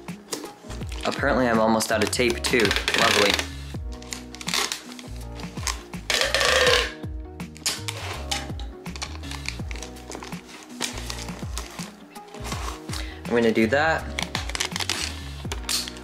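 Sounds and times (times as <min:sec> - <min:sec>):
background music: 0:00.0 - 0:16.0
packing tape pulled from dispenser: 0:02.0 - 0:07.0, 0:07.6 - 0:13.0, 0:14.1 - 0:16.0.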